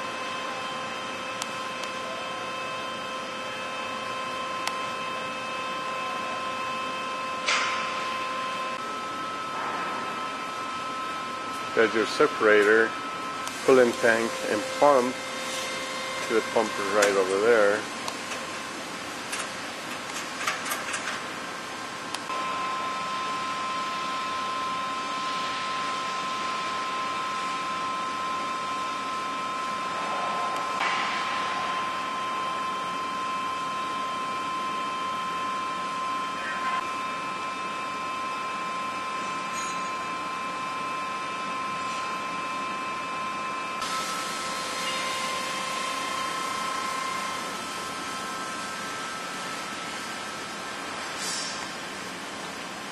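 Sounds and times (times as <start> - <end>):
high multi-tone whine: 0.0 - 18.8, 22.2 - 52.0
machine humming: 0.0 - 52.9.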